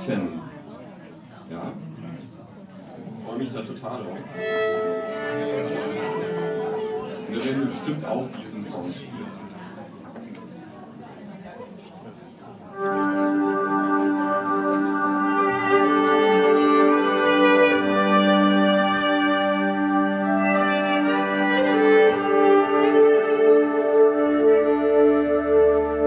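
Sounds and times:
electric violin tune: 4.3s - 7.8s, 12.7s - 26.0s.

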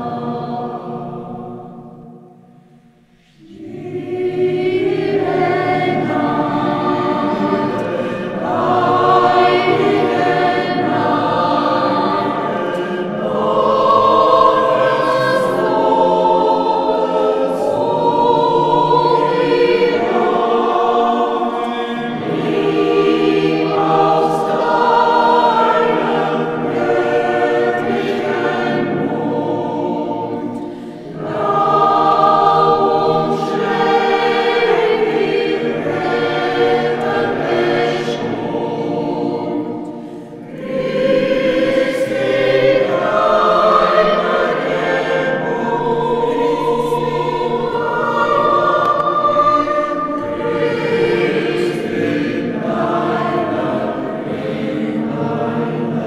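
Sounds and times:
church choir singing: 0.0s - 56.0s.

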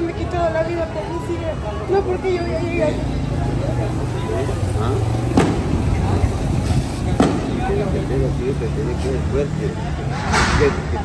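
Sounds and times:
street traffic rumble: 0.0s - 11.0s
vehicle engine running: 0.0s - 11.0s.

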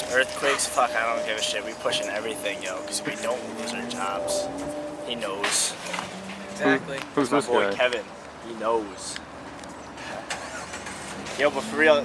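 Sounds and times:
vehicle engine running: 0.0s - 7.4s.

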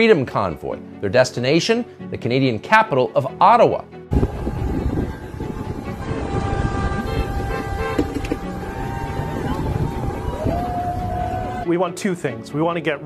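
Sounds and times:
horns held in steady tones: 4.1s - 11.6s
traffic noise: 4.1s - 11.6s
trucks and cars driving past: 4.1s - 11.6s
crowd voices: 4.2s - 11.6s.

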